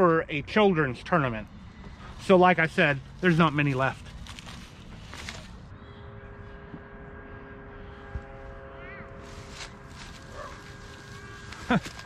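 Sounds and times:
distant motor hum: 1.1s - 12.0s.

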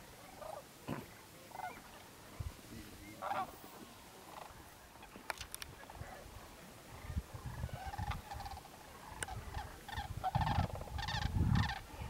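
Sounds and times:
cranes calling: 0.2s - 2.1s, 3.2s - 6.3s, 6.9s - 12.0s.

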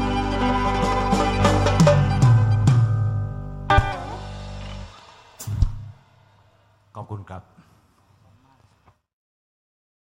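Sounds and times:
rock band playing: 0.0s - 6.2s.

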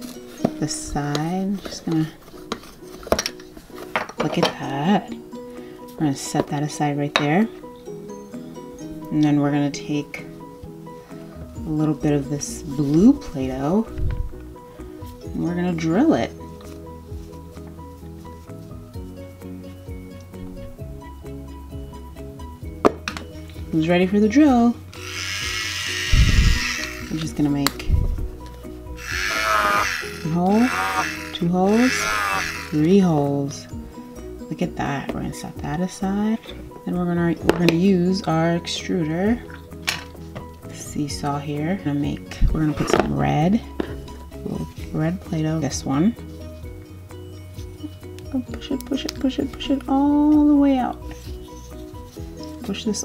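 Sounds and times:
faint background music: 0.0s - 53.0s
toy electric drill whirring: 24.9s - 27.4s, 29.0s - 32.8s.

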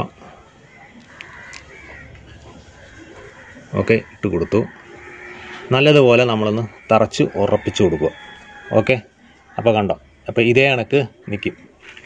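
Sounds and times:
man speaking: 5.7s - 8.1s.

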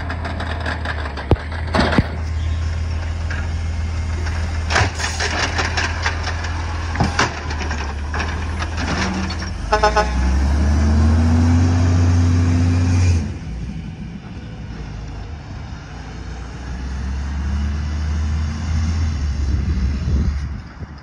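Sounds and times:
truck diesel engine running hard: 0.0s - 20.9s.

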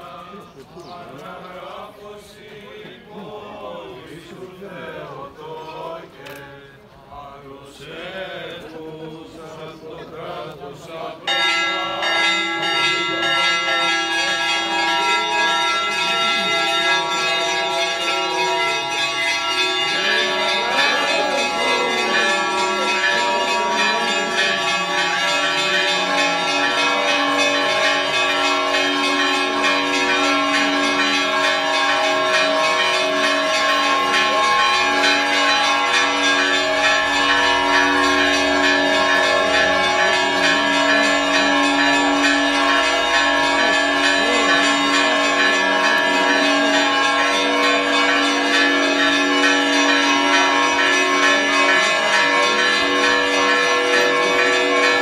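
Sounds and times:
church bells ringing: 0.0s - 6.8s, 7.7s - 55.0s.

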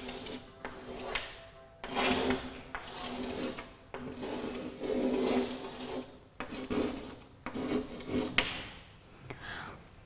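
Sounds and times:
chalk scraping on blackboard: 0.0s - 8.6s
chalk tapping: 0.0s - 8.8s.

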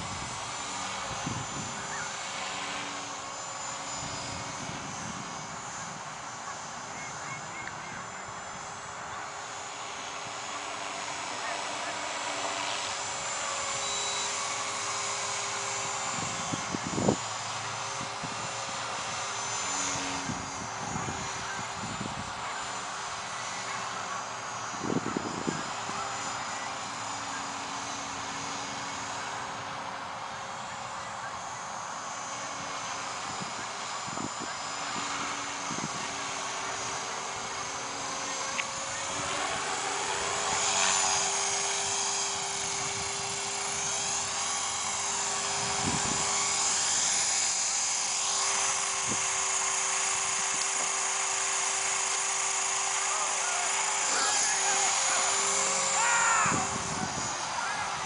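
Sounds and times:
rc helicopter motor whine: 0.0s - 58.0s
rotor buzzing: 0.0s - 58.0s.

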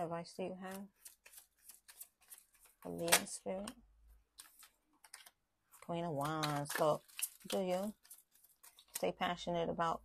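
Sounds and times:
person speaking: 0.0s - 3.9s, 5.7s - 10.0s
cards clicking and tapping: 0.7s - 3.8s.

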